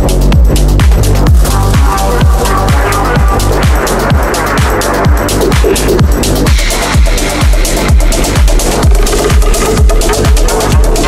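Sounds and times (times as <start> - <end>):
techno music: 0.0 - 11.0.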